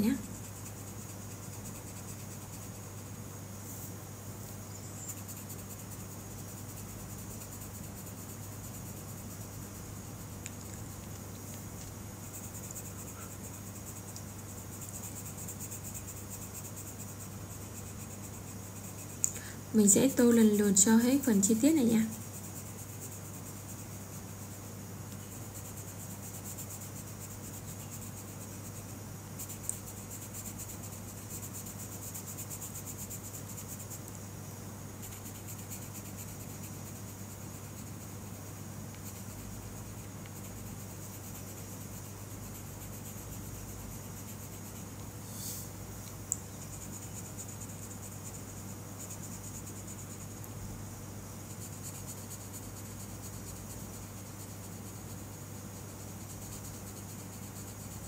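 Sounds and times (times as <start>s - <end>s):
pencil scratching on paper: 5.0s - 10.3s, 19.8s - 24.5s, 25.1s - 34.0s, 35.0s - 38.3s, 38.9s - 45.6s, 46.6s - 50.4s, 51.4s - 58.0s.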